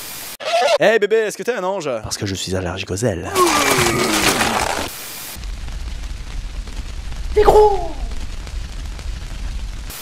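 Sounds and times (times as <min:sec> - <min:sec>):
man vomiting: 0:03.3 - 0:04.9
deep steady rumble: 0:08.1 - 0:09.9.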